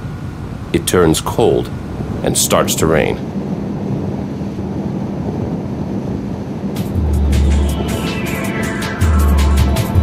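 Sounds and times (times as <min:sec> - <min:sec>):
outboard engine drone: 0:00.0 - 0:10.0
wind noise: 0:01.7 - 0:10.0
music with heavy bass and drums: 0:06.8 - 0:10.0.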